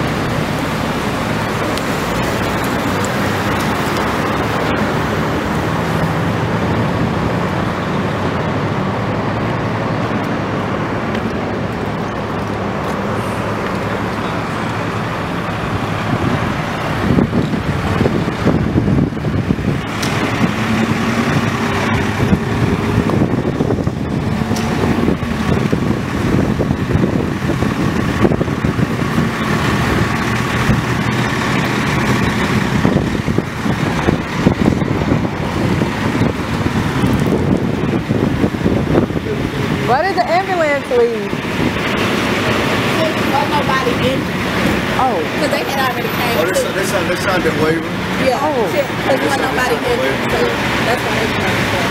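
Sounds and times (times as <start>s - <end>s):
steady engine hum: 0.0s - 51.9s
vehicles passing: 0.0s - 51.9s
wind on microphone: 0.0s - 51.9s.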